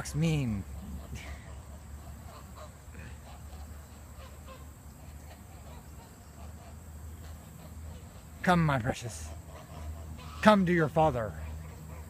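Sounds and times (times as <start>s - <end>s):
ducks quacking and honking: 0.0s - 12.0s.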